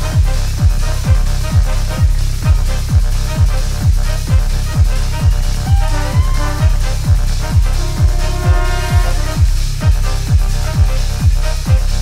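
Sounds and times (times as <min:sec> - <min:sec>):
kick drum thumping: 0:00.0 - 0:12.0
saxophone and brass chords: 0:00.0 - 0:12.0.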